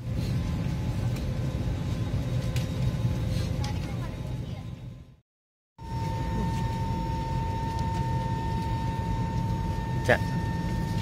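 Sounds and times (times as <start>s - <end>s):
ventilation rumble: 0.0s - 5.2s, 5.8s - 11.0s
faint steady whine: 5.8s - 11.0s.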